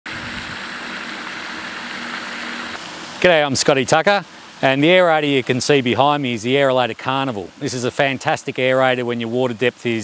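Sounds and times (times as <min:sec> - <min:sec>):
fountain spray splashing on water: 0:00.1 - 0:10.0.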